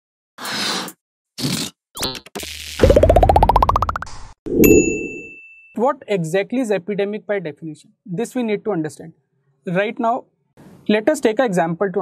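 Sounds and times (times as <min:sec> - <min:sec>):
bright chime: 0:04.6 - 0:05.6.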